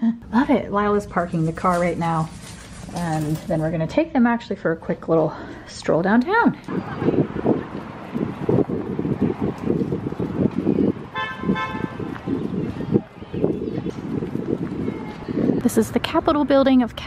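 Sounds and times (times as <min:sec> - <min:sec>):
low street rumble: 0:00.2 - 0:17.0
car horn: 0:11.1 - 0:12.1.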